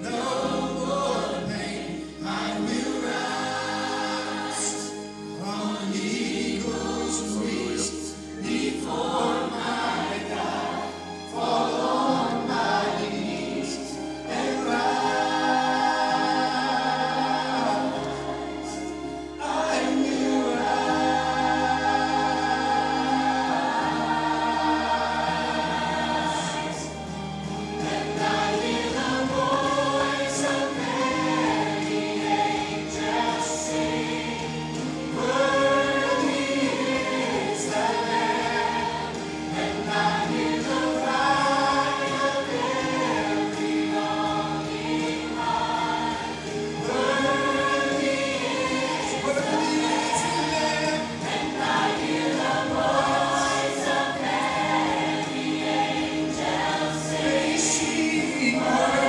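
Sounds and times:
church choir singing gospel: 0:00.0 - 0:59.0
steady bass accompaniment: 0:00.0 - 0:59.0
male lead singer: 0:49.0 - 0:51.3, 0:57.3 - 0:59.0.

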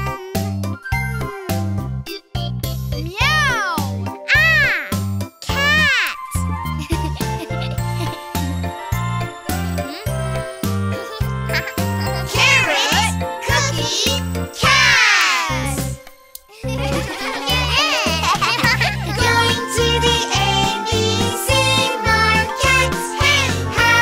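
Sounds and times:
bouncy children's song music: 0:00.0 - 0:24.0
cartoon voice meowing: 0:03.5 - 0:06.3
pitched vocals: 0:09.0 - 0:16.0, 0:16.6 - 0:24.0.

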